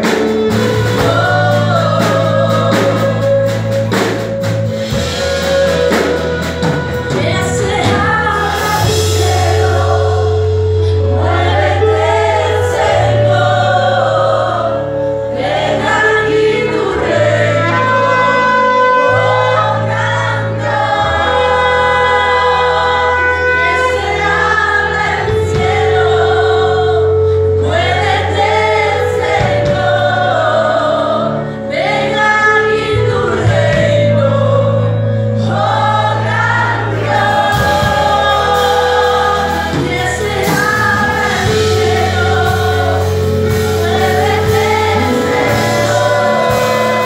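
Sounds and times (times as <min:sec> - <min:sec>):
band playing held chords: 0:00.0 - 0:47.0
people singing worship song: 0:00.0 - 0:47.0.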